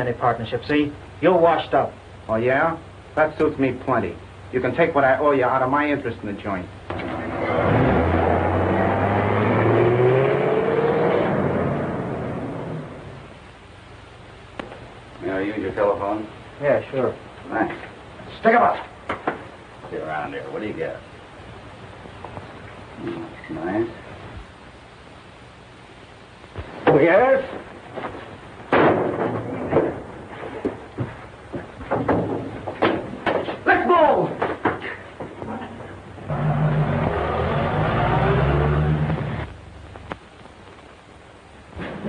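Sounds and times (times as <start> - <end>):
engine whine rising in pitch: 7.0 - 13.3, 36.2 - 39.6.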